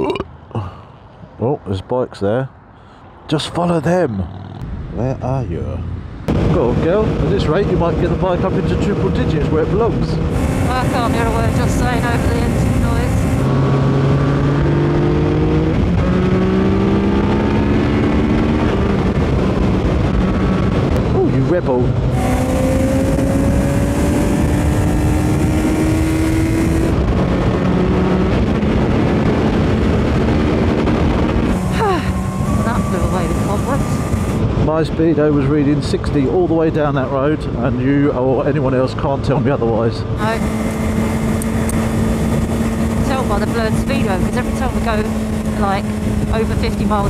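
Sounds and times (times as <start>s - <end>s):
wind and road noise: 0.0s - 47.0s
motorcycle engine accelerating: 3.9s - 35.9s, 38.5s - 47.0s.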